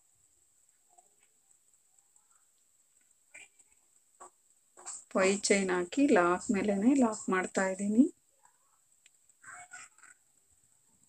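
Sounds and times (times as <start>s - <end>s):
person speaking: 4.9s - 8.1s
faint short animal calls: 9.4s - 10.2s.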